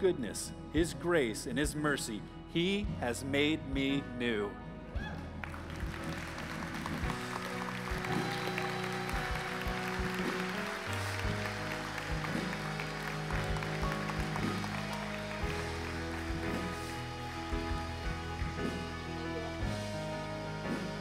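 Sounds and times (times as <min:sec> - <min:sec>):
slow keyboard and guitar chords: 0:00.0 - 0:21.0
congregation applauding: 0:05.2 - 0:21.0.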